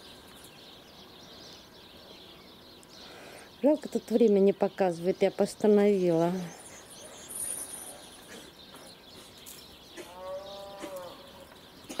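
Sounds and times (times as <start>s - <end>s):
animal call: 10.0s - 12.0s.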